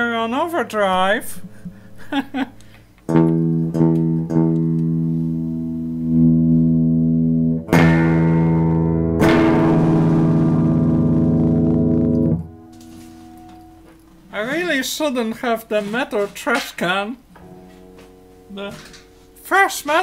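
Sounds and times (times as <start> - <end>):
overdriven electric guitar chords: 1.0 - 14.3, 17.4 - 19.4.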